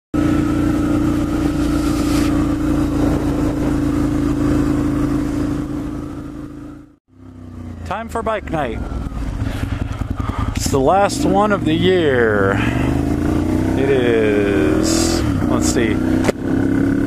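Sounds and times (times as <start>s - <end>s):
motorcycle engine running: 0.1s - 17.0s
man speaking: 7.9s - 8.8s, 10.6s - 12.7s, 13.8s - 16.0s.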